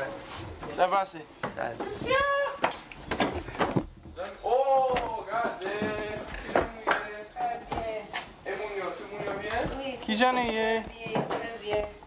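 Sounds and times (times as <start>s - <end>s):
people calling and talking: 0.0s - 12.0s.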